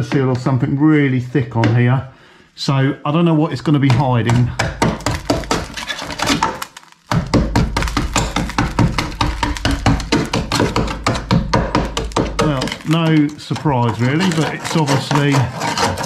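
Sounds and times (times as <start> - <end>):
flakes dropping to floor: 5.1 - 11.2
screwdriver scraping rusted metal: 12.5 - 16.0.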